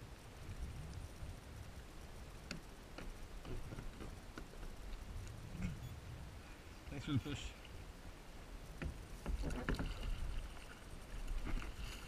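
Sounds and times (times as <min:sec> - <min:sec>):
water rumbling against board: 0:02.4 - 0:06.5, 0:08.7 - 0:12.0
paddle splashing in water: 0:09.1 - 0:12.0.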